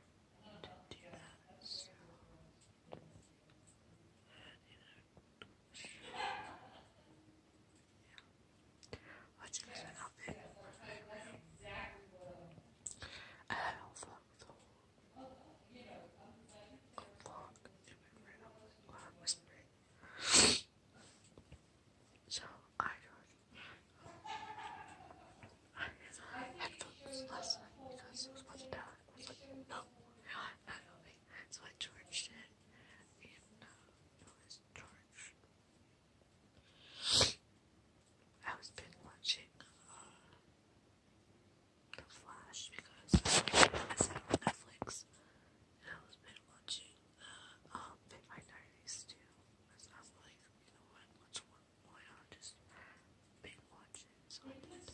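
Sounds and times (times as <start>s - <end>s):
woman whispering: 0.4s - 6.8s, 8.0s - 20.3s, 22.2s - 35.4s, 38.4s - 40.4s, 41.9s - 54.9s.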